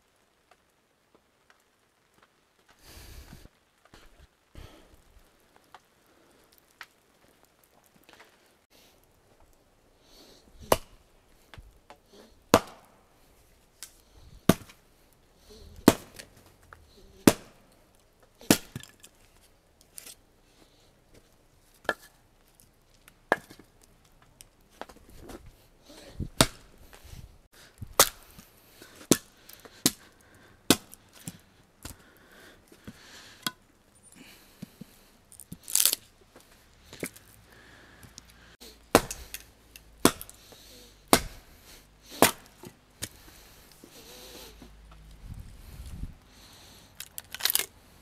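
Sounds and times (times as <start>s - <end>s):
axe chopping firewood: 10.6s - 11.1s, 11.9s - 13.0s, 13.8s - 14.8s, 15.5s - 19.2s, 21.8s - 22.2s, 23.2s - 23.9s, 24.8s - 27.1s, 27.8s - 32.2s, 38.0s - 43.9s.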